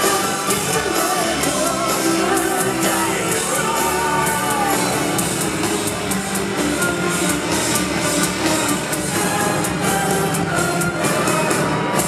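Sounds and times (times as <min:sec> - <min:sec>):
metal band playing live: 0:00.0 - 0:12.0.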